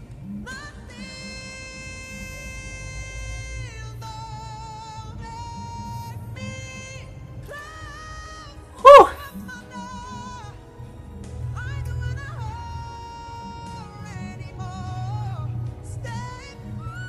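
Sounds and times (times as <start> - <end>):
man singing power ballad over speakers: 0.0 - 10.9, 11.6 - 17.0
loud vocal cry: 8.8 - 9.2.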